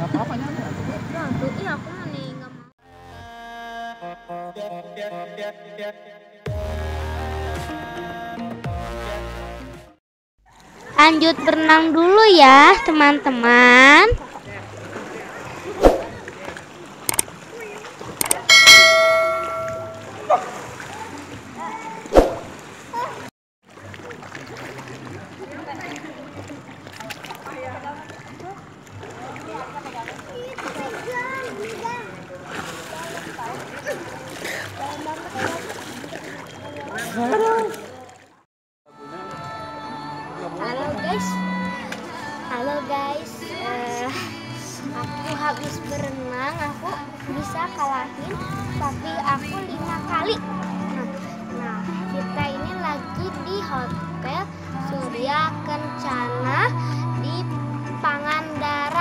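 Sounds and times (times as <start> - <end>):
background music: 2.9 - 10.0, 39.0 - 59.0
swimmers splashing in a pool: 10.5 - 38.4
quick clicks: 17.1 - 17.3, 18.2 - 18.5
ringing bell chime: 18.4 - 20.2.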